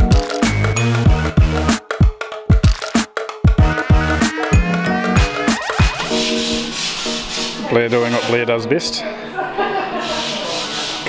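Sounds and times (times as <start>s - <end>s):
background music: 0.0s - 9.6s
broom sweeping concrete floor: 5.8s - 8.5s, 9.9s - 11.0s.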